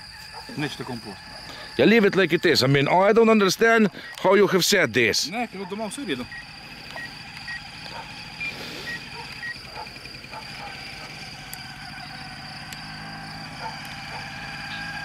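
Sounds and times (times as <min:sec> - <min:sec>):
high-pitched whine: 0:00.0 - 0:03.8, 0:04.4 - 0:15.0
short electronic beeps: 0:06.2 - 0:07.7.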